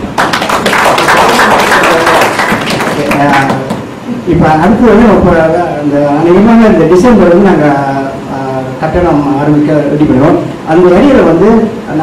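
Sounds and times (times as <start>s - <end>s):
audience applauding: 0.1s - 3.8s.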